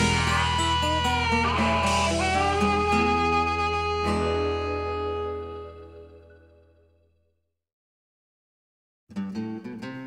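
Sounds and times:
blues band playing: 0:00.0 - 0:06.3
guitar chord ringing: 0:00.0 - 0:07.1.

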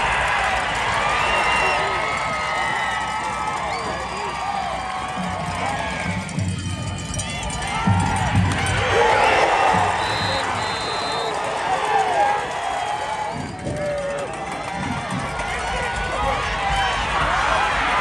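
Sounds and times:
football crowd shouting and cheering: 0:00.0 - 0:18.0
referee's whistle blasts: 0:09.8 - 0:11.4.

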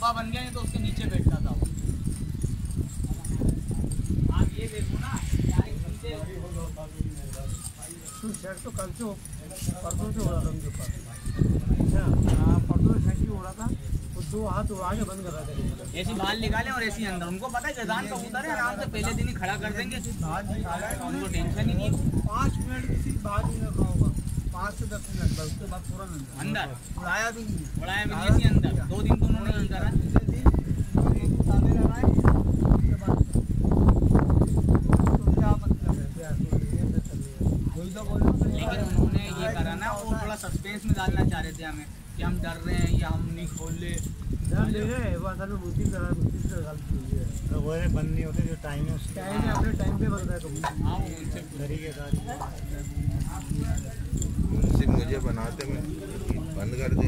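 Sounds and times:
indistinct voices talking: 0:00.0 - 0:57.0.

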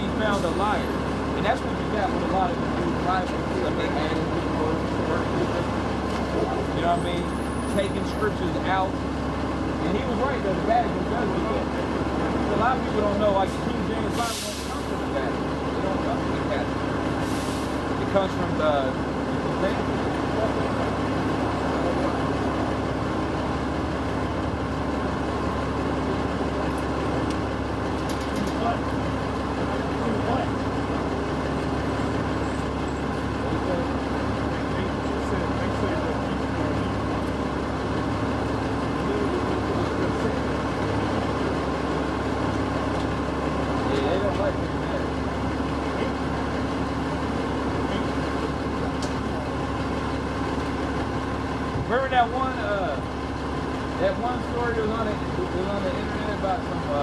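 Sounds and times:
bus engine idling: 0:00.0 - 0:57.0
street noise: 0:00.0 - 0:57.0.

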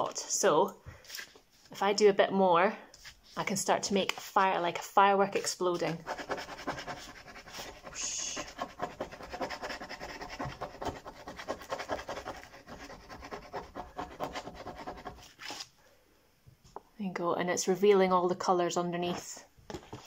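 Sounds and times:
teaspoon scratching paper: 0:05.7 - 0:15.6.

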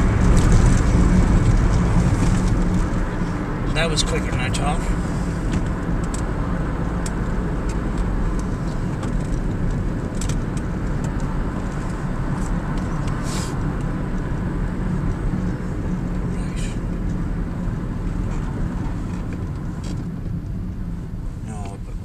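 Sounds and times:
car cabin road rumble: 0:00.0 - 0:22.0.

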